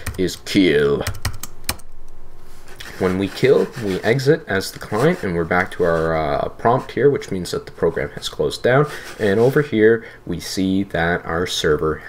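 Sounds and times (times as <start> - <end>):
computer keyboard keystrokes: 1.0 - 1.9.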